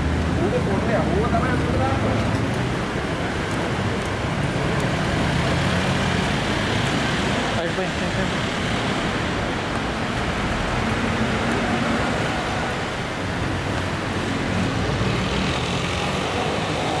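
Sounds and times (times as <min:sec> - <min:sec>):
road traffic: 0:00.0 - 0:17.0.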